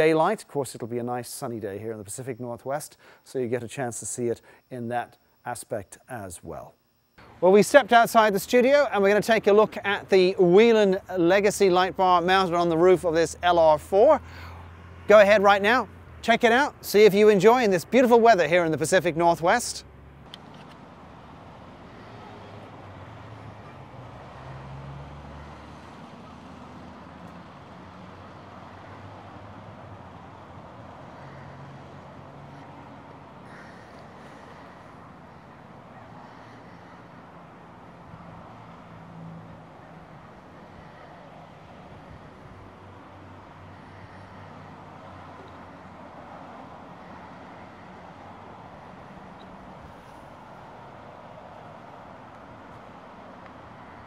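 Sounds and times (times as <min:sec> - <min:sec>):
road traffic noise: 0:00.0 - 0:03.4, 0:07.2 - 0:54.0.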